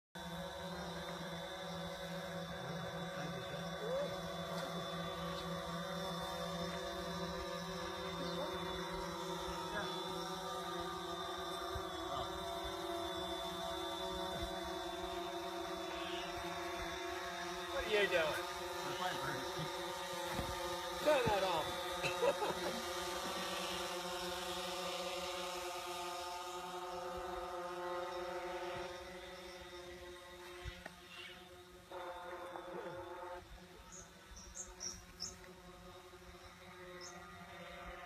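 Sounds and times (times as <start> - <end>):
drone propellers humming: 0.2 - 38.0.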